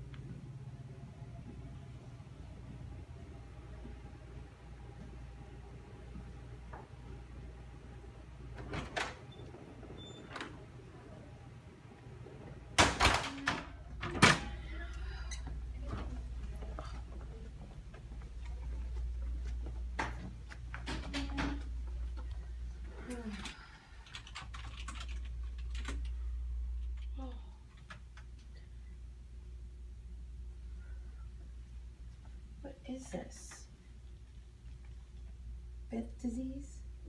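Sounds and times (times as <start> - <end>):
steady low hum: 0.0 - 37.0.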